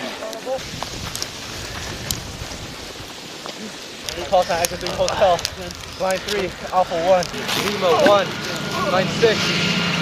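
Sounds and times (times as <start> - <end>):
open-air noise: 0.0 - 10.0.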